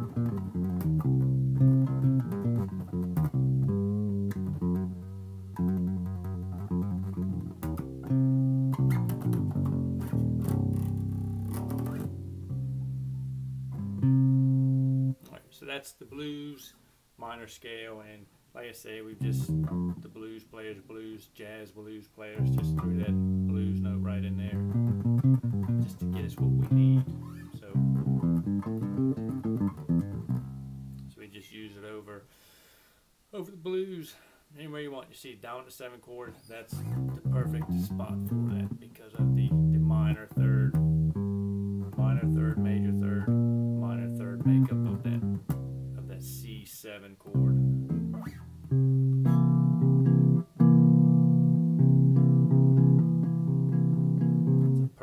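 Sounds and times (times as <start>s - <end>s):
electric bass guitar playing: 0.0s - 15.3s, 19.2s - 20.2s, 22.3s - 31.2s, 36.7s - 46.6s, 47.2s - 55.0s.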